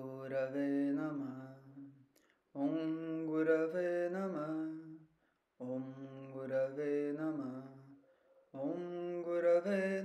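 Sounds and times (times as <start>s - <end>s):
man chanting a mantra: 5.6s - 7.9s.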